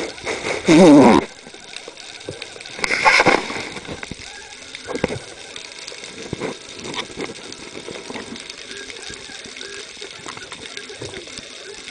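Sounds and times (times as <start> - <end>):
underwater crackling and ticking: 0.0 - 11.9.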